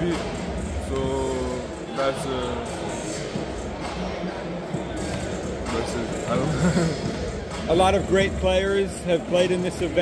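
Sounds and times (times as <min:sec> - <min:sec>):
steady hum of hall: 0:00.0 - 0:10.0.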